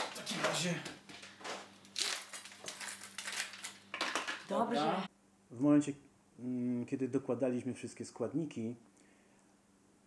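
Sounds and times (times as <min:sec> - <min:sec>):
plastic ice cube tray crackling: 0:02.0 - 0:04.4.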